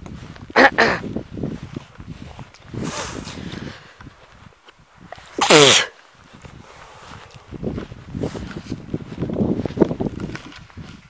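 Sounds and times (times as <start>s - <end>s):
person sneezing loudly: 0.6s - 1.0s, 5.4s - 6.0s.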